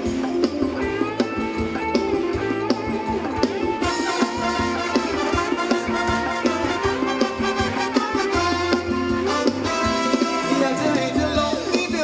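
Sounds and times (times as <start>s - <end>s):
live band dance music: 0.0s - 12.0s
steady drum beat: 0.0s - 12.0s.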